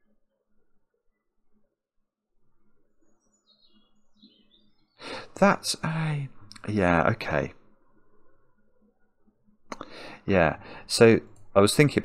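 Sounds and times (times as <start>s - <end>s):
faint bird singing: 0.0s - 11.8s.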